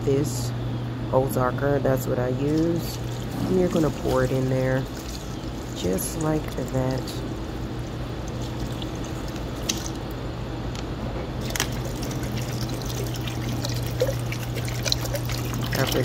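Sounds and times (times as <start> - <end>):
water trickle splashing: 2.4 - 10.2, 11.4 - 16.0
water pouring into a metal pot: 11.4 - 16.0.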